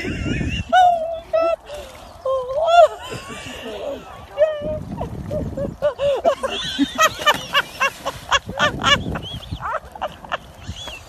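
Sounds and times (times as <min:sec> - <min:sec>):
people squealing and laughing: 0:02.6 - 0:11.0.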